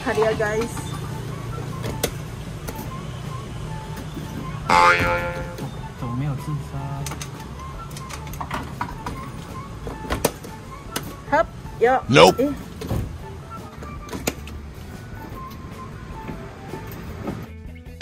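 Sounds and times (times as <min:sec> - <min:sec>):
claw machine music: 0:00.0 - 0:11.4.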